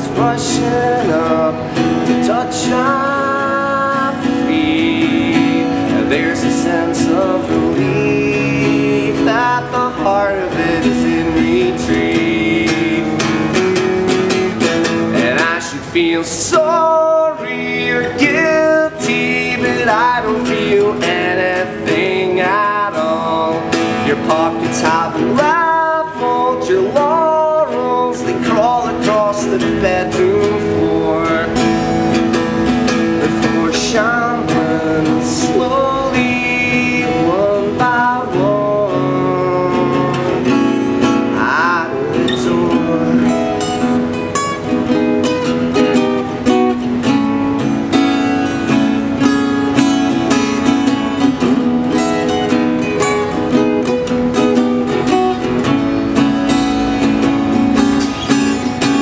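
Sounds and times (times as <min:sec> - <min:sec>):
man singing: 0:00.0 - 0:47.3
acoustic guitar strumming: 0:00.0 - 0:59.0.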